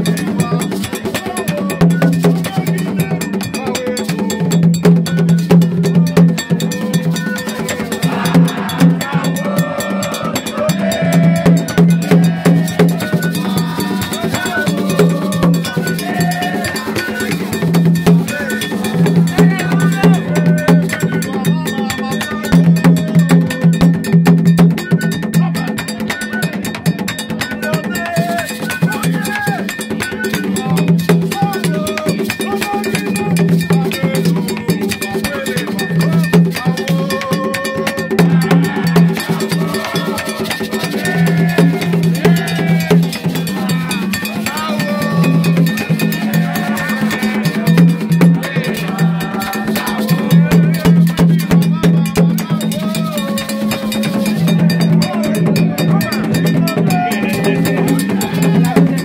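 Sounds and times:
clanking metal beat: 0.0 - 59.0
hand drums beating: 0.0 - 59.0
voices singing: 0.0 - 59.0.

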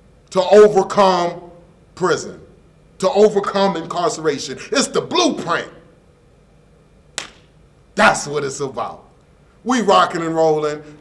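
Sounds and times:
sharp snap: 7.2 - 7.5.

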